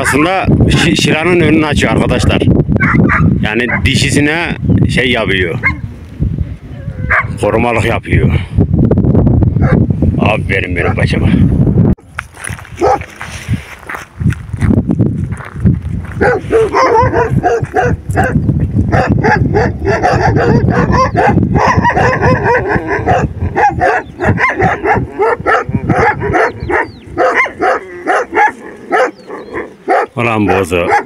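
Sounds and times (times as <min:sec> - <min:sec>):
dogs barking: 0:00.0 - 0:01.1, 0:02.1 - 0:04.0, 0:05.6 - 0:05.9, 0:07.0 - 0:07.4, 0:09.6 - 0:09.9, 0:10.8 - 0:11.1, 0:12.8 - 0:13.1, 0:16.1 - 0:31.0
wind rumble on microphone: 0:00.0 - 0:31.0.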